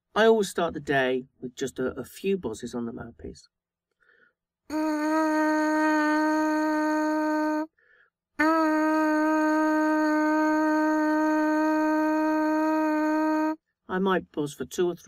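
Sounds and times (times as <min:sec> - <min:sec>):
lips buzzing into trumpet mouthpiece: 0:04.7 - 0:07.7.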